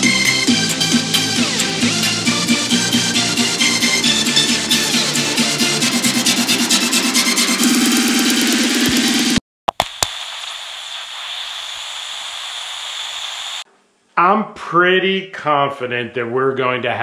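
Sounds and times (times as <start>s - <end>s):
electronic music with steady beat: 0.0s - 10.0s
tv static hiss: 8.8s - 13.7s.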